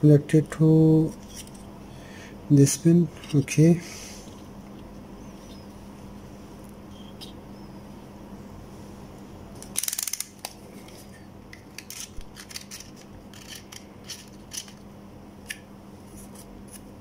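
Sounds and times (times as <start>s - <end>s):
circuit board handled over paper: 9.6s - 14.8s.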